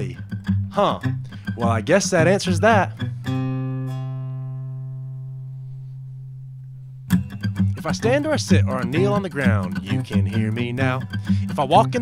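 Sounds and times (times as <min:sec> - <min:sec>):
acoustic guitar strum ringing: 0:00.0 - 0:12.0.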